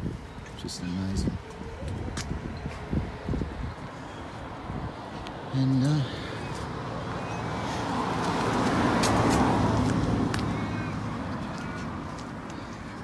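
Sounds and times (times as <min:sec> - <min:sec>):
car passing by: 0:05.4 - 0:12.5.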